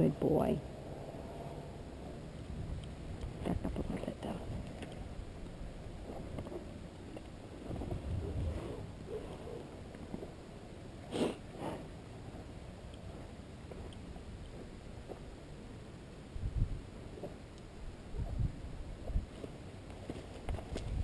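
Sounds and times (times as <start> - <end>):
horse breathy blows: 11.1 - 11.9.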